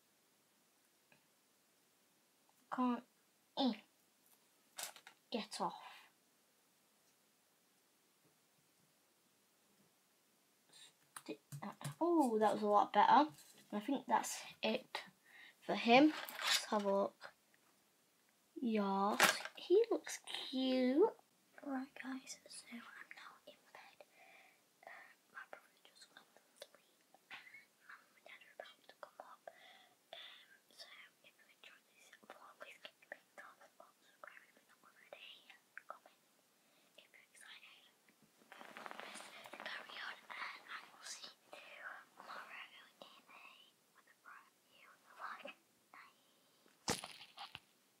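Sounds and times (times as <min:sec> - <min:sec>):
girl whispering: 0:02.7 - 0:03.9, 0:05.4 - 0:06.1, 0:10.8 - 0:17.4, 0:18.8 - 0:36.2, 0:36.9 - 0:46.6.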